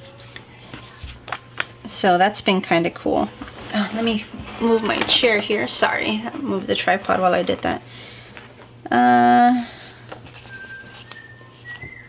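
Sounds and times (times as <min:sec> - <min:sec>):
paper sticker sheet rustling: 0:10.1 - 0:11.8
faint whistling notes: 0:10.4 - 0:12.0.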